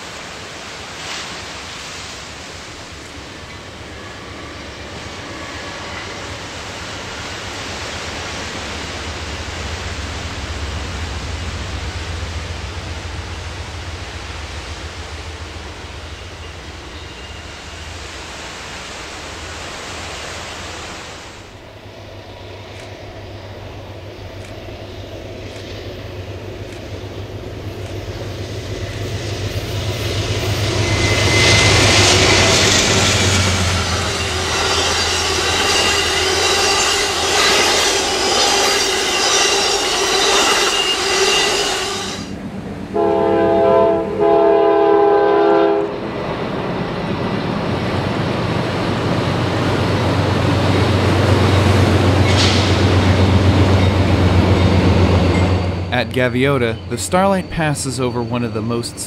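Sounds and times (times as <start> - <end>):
diesel locomotive engine drone: 0.0 - 59.0
train rushing past: 0.0 - 59.0
thin wheel squeal: 30.7 - 42.3.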